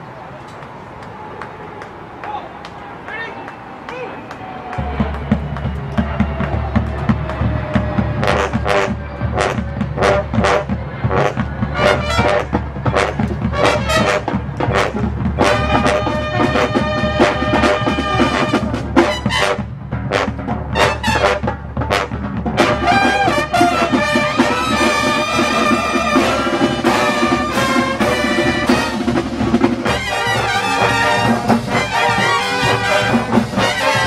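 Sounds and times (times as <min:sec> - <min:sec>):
brass band playing: 0:04.8 - 0:34.0
drum strokes: 0:04.8 - 0:34.0.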